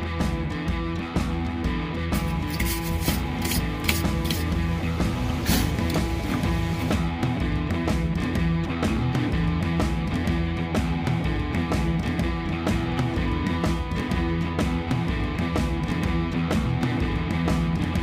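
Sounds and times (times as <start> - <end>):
background music: 0.0 - 18.0
wire brush scrubbing rusty metal: 2.2 - 6.6.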